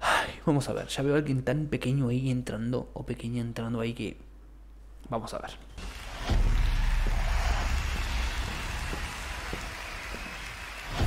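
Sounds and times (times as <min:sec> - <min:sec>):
studio audience applause: 0:05.8 - 0:11.0.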